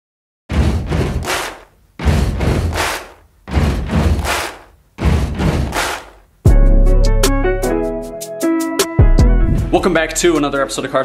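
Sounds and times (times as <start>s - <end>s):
deep whooshing bursts: 0.5s - 6.2s.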